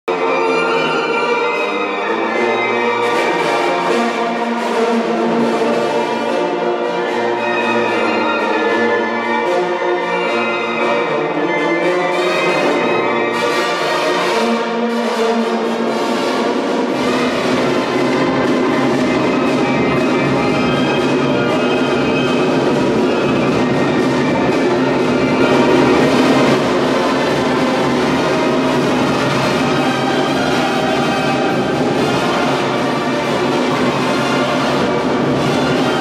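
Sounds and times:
brass band playing: 0.0 - 36.0
deep bass part: 24.6 - 28.7.

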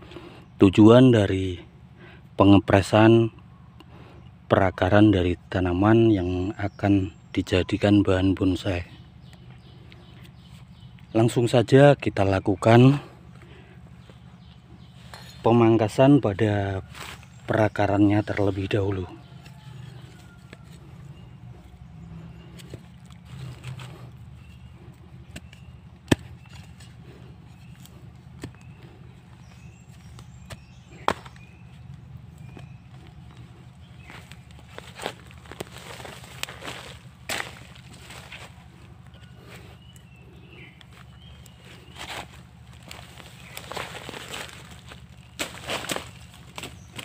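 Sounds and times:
steady low hum: 0.0 - 47.0
rustling and scraping: 16.8 - 17.8, 18.5 - 47.0
machete chopping roots: 22.5 - 32.8, 34.0 - 38.6, 40.8 - 47.0.

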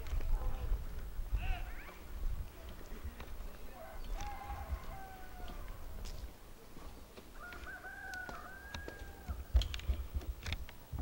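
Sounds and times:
rooster crowing: 3.7 - 6.0, 7.4 - 9.5.

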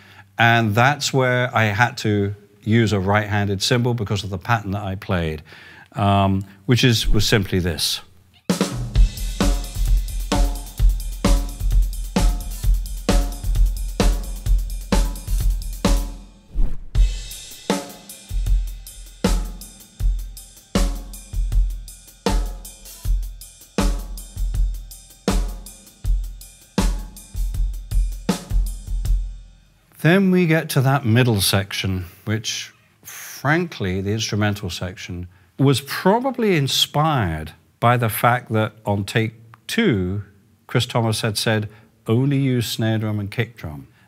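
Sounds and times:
ride cymbal pattern: 8.9 - 16.1.

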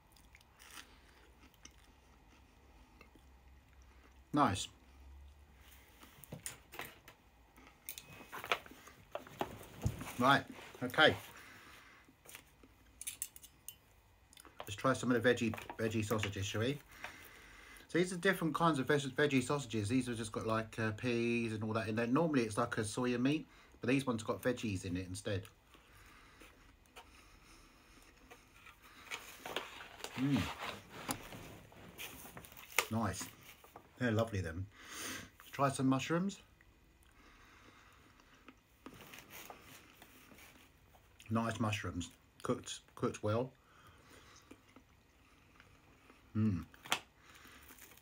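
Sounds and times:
man chewing food: 0.0 - 13.0, 13.8 - 14.7, 25.5 - 33.9, 36.5 - 41.3, 43.7 - 48.0.

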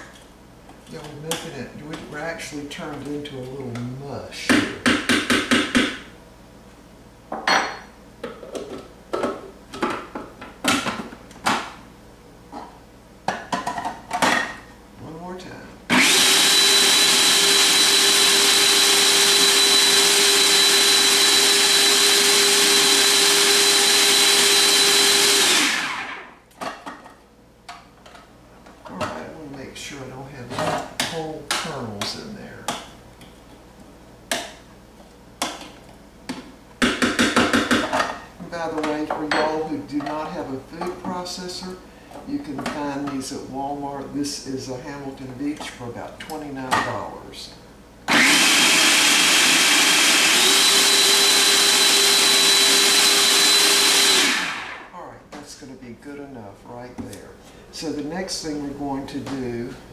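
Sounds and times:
food processor motor running: 15.9 - 26.3, 48.1 - 54.9.

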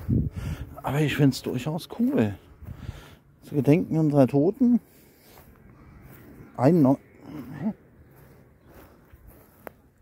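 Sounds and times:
footsteps on dry grass: 0.0 - 10.0.

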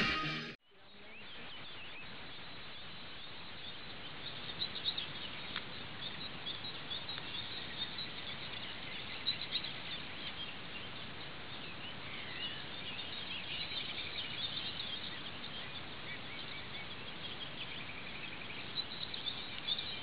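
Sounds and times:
steady outdoor hiss: 0.0 - 20.0
small birds chirping: 0.6 - 20.0.

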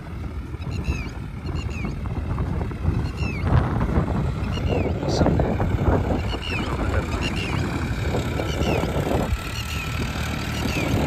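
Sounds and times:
tractor diesel engine under load: 0.0 - 11.0
wind rumble on microphone: 0.0 - 11.0
small birds chirping: 0.5 - 11.0.

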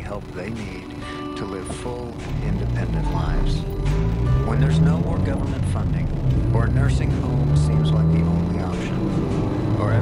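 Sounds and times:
engine and road noise: 0.0 - 10.0.

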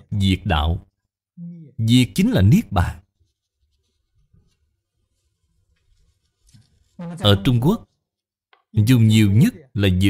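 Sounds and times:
book pages rustling: 3.0 - 8.7.

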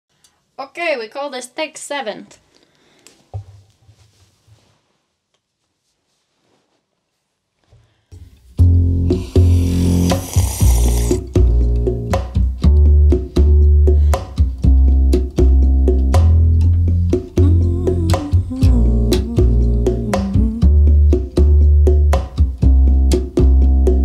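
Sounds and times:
plucked bass notes: 8.6 - 9.8, 11.2 - 24.0
short hiss: 9.1 - 11.3.

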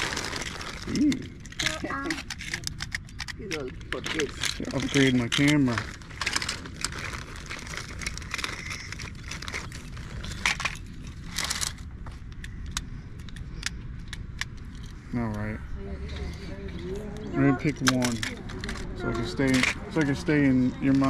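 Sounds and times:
plastic toys clattering: 0.0 - 15.5, 16.2 - 21.0
person speaking: 15.1 - 21.0.

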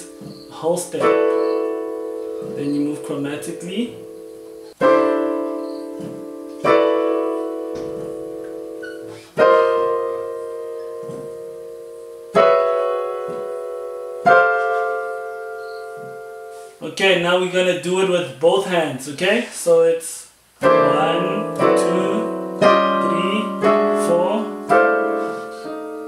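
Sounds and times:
digital piano chords ringing: 0.0 - 18.2, 20.6 - 26.0.

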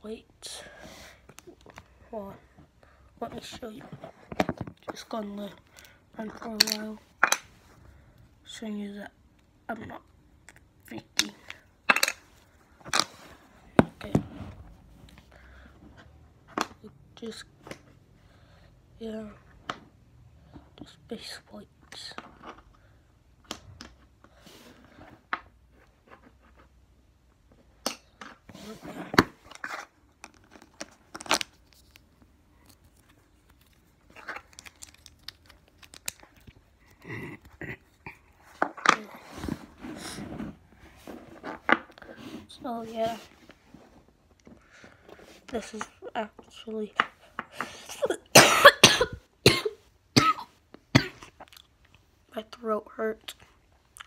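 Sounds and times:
person coughing: 47.8 - 51.3.

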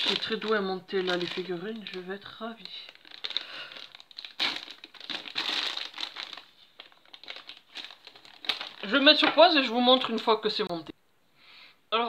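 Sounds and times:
plastic bag crinkling: 0.0 - 10.3.

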